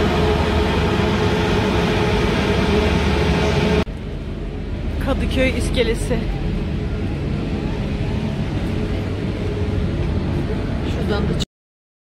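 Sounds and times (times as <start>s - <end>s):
engines rumbling: 0.0s - 11.4s
wind: 0.0s - 11.5s.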